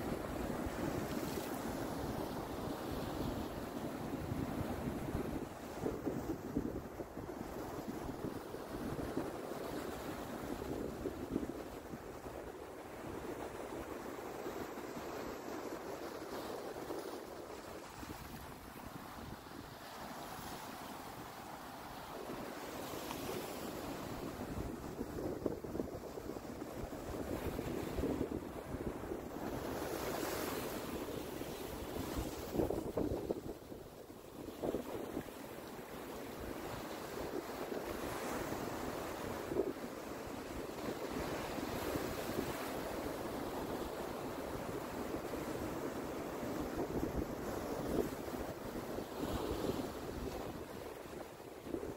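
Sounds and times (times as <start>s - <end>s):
waves washing over sand and rocks: 0.0s - 51.9s
wind buffeting microphone: 23.2s - 33.8s.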